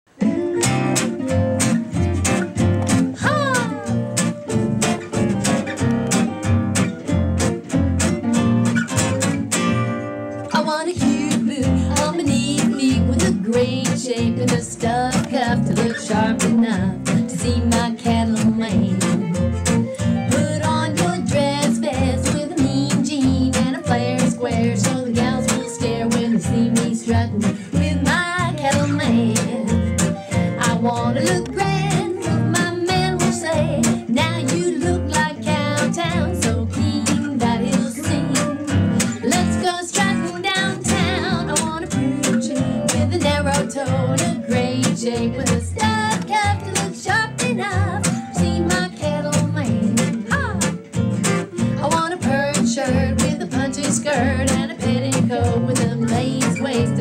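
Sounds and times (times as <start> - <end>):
acoustic guitar strumming: 0.1 - 57.0.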